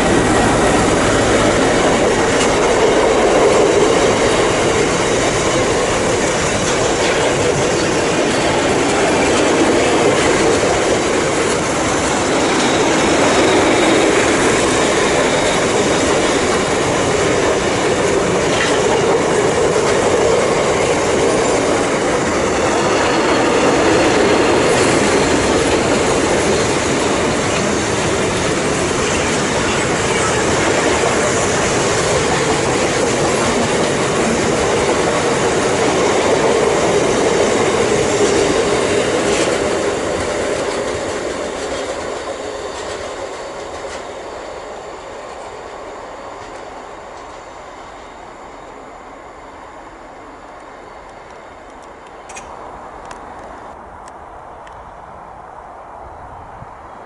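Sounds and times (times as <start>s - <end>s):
freight train wheels rumbling: 0.0s - 57.0s.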